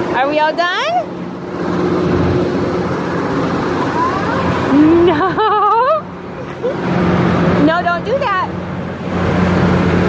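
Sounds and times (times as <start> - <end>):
amusement ride machinery humming: 0.0 - 10.0.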